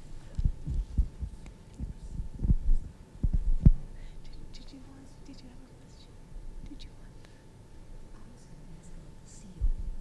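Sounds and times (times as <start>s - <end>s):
microphone handling knocks: 0.4s - 3.8s.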